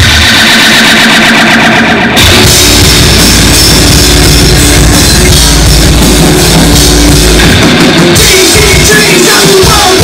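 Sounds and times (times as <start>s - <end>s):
high feedback tone: 0.0s - 9.7s
distorted electric guitars: 0.0s - 10.0s.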